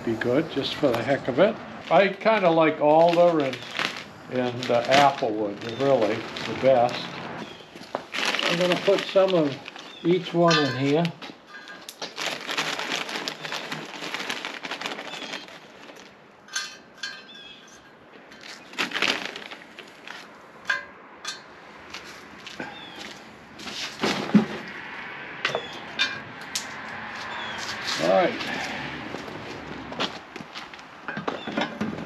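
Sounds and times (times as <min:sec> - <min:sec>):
crinkly bags: 0:00.0 - 0:16.2, 0:18.2 - 0:20.5, 0:21.9 - 0:24.7, 0:27.2 - 0:32.0
dry wood chips rustling and crackling: 0:00.0 - 0:20.8, 0:21.8 - 0:24.9, 0:26.5 - 0:32.0.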